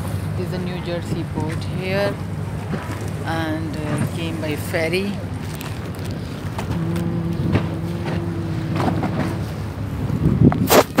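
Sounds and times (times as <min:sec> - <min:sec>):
ferry engine drone: 0:00.0 - 0:11.0
wind rumbling on microphone: 0:00.2 - 0:11.0.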